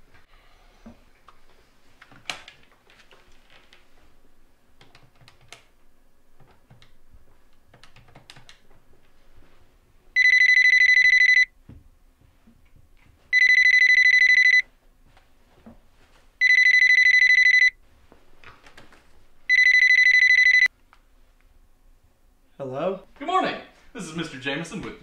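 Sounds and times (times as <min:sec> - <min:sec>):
telephone ringing: 0:10.2 - 0:11.5, 0:13.3 - 0:14.6, 0:16.4 - 0:17.8, 0:19.5 - 0:20.7.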